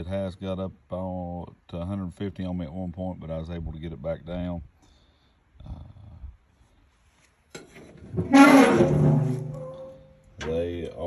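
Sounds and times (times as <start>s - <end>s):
metal lid hinge creaking: 7.6s - 10.6s.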